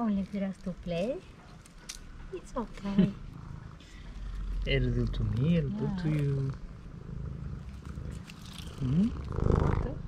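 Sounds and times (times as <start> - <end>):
cat purring: 2.4 - 10.0.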